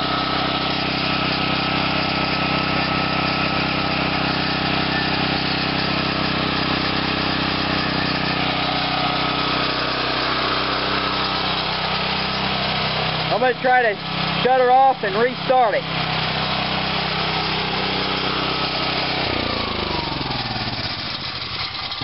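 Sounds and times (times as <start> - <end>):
small engine running steadily: 0.0 - 22.0.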